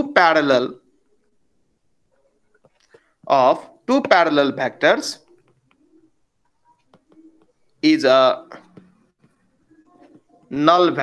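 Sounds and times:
person speaking: 0.0s - 0.9s, 3.2s - 5.5s, 6.8s - 11.0s
stylus tapping on tablet screen: 5.3s - 5.8s, 6.4s - 7.8s, 8.5s - 10.4s.

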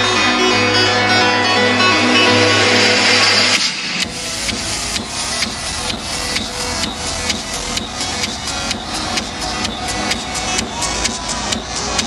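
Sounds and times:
synth chord with bass: 0.0s - 12.0s.

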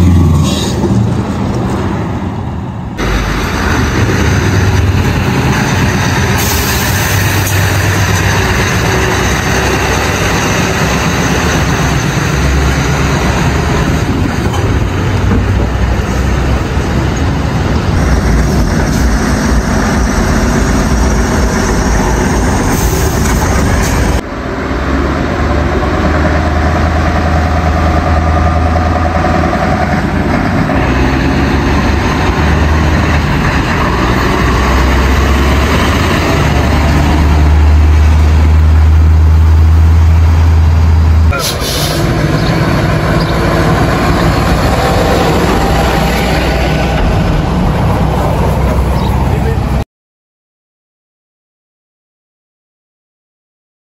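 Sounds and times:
truck diesel engines rumbling: 0.0s - 49.8s.

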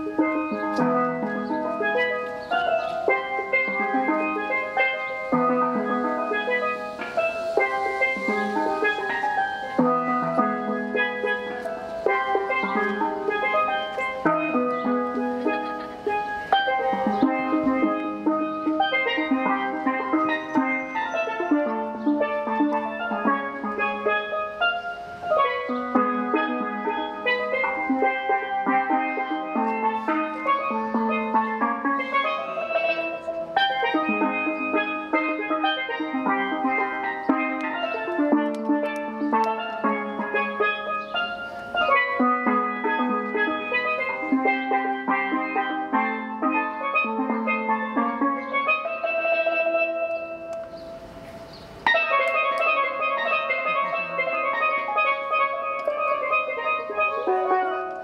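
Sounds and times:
steel pans played with mallets: 0.0s - 58.0s.

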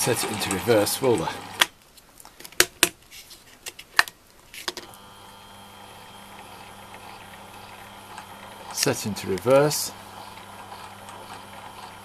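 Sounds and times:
drill mill motor humming: 4.9s - 12.0s.

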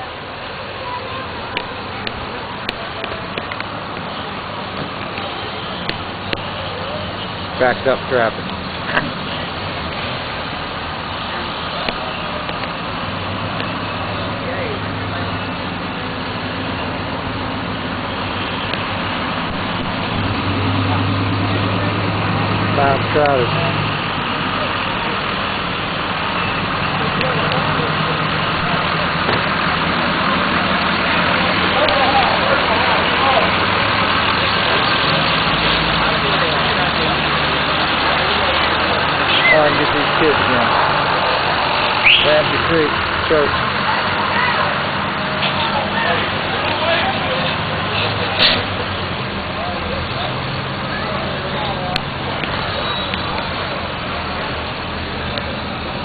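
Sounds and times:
vehicle engines idling: 0.0s - 56.0s
voices: 0.0s - 56.0s.

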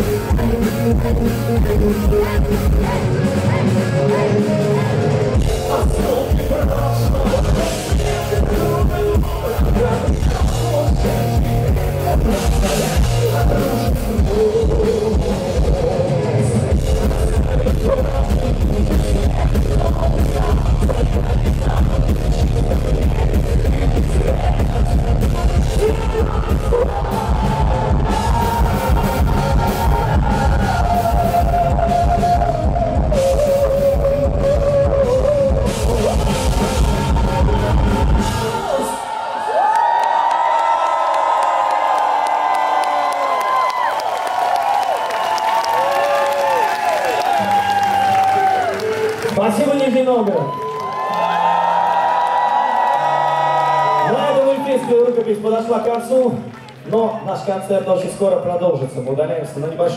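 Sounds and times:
live heavy metal band: 0.0s - 39.2s
crowd cheering and whooping: 0.1s - 14.6s, 24.2s - 58.3s.

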